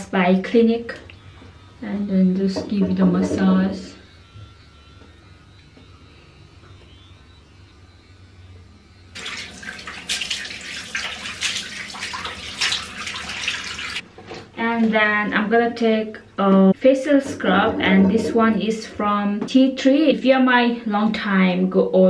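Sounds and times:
water splashing: 9.2s - 14.0s.

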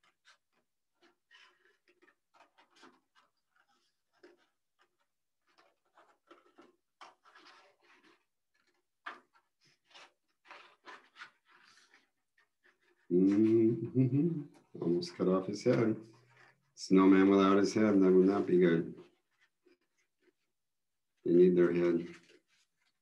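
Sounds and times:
scissors cutting paper: 0.0s - 13.6s.

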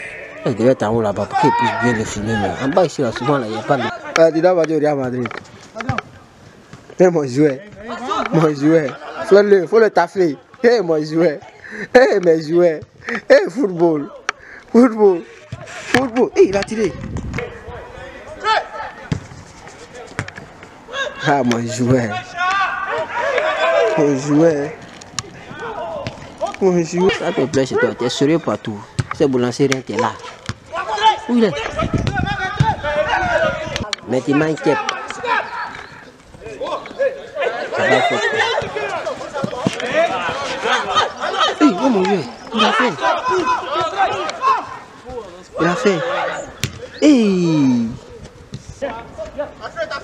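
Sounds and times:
excited chatter of people: 30.0s - 50.0s.

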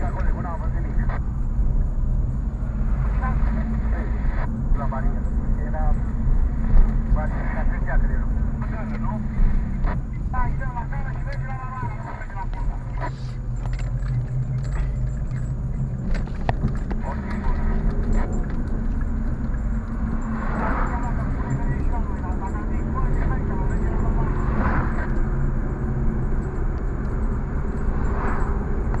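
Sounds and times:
car engine and road noise: 0.0s - 29.0s.

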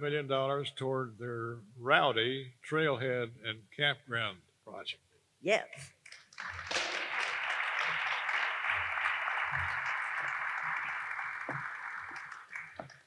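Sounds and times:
audience applauding: 6.1s - 13.0s.

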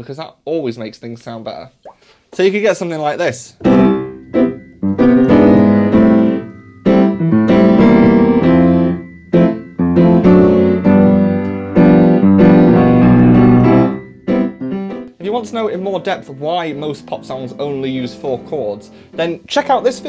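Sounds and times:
piano chords: 3.6s - 20.0s.

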